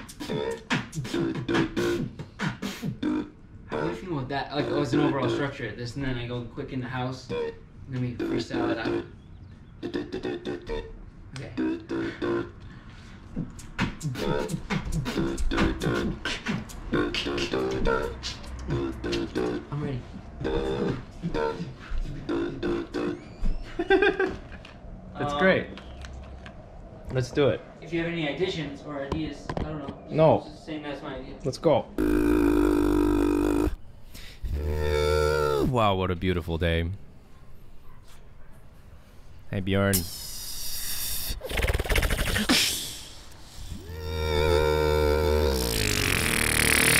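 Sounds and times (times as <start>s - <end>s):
beatboxing: 0.0s - 4.0s, 9.8s - 12.6s, 13.2s - 23.2s, 32.0s - 33.8s, 39.9s - 46.9s
vocal melody: 0.0s - 5.4s, 9.8s - 12.6s, 13.4s - 23.2s, 32.0s - 35.7s, 43.6s - 46.9s
low bass line: 32.0s - 33.8s
man singing long notes: 32.0s - 33.8s, 43.8s - 45.8s.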